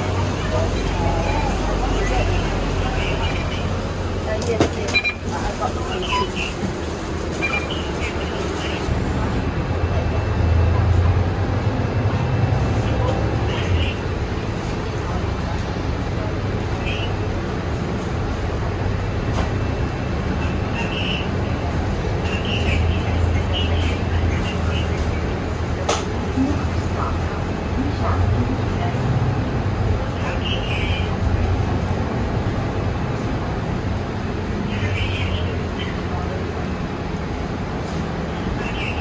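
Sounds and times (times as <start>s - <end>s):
bus engine idling: 0.0s - 39.0s
passengers' voices: 0.0s - 39.0s.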